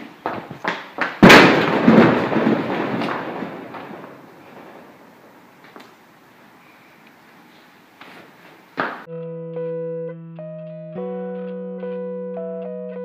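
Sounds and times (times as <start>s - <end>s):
crash against sheet-metal wall: 1.2s - 5.3s.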